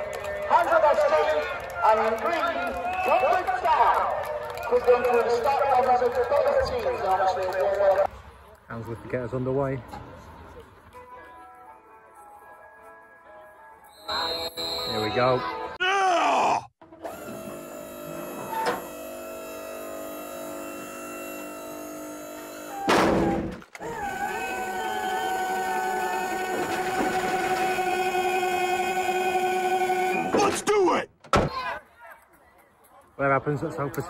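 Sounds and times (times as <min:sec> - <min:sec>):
mechanical hum: 0:16.9 - 0:30.4
wavering motor whine: 0:17.0 - 0:22.9, 0:23.8 - 0:30.4
mechanical thunk: 0:22.9 - 0:23.6, 0:31.2 - 0:31.5.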